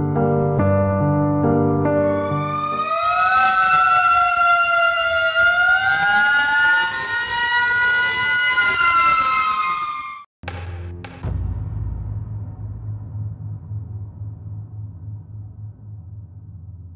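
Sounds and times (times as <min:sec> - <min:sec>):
soft piano music: 0:00.0 - 0:02.8
fire engine sirens wailing: 0:02.0 - 0:10.3.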